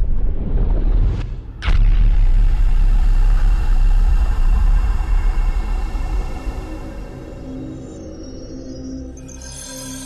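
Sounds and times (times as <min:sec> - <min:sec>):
deep steady rumble: 0:00.0 - 0:07.4
faint sustained high tones: 0:05.9 - 0:10.0.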